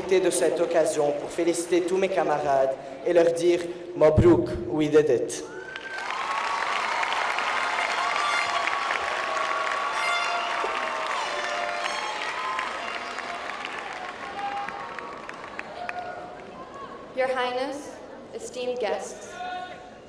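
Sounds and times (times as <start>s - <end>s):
audience applauding: 0.0s - 2.2s, 5.5s - 16.9s
crowd cheering and calling: 5.4s - 17.2s.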